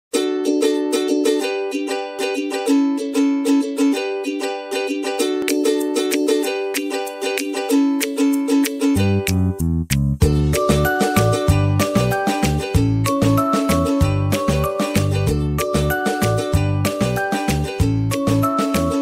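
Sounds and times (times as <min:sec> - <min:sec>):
plucked string tune: 0:00.1 - 0:19.0
deep bass line: 0:09.0 - 0:19.0.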